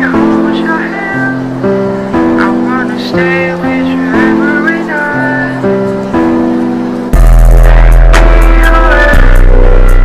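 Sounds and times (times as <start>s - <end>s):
gliding high melody line: 0.0s - 10.0s
guitar-like chords: 5.2s - 10.0s.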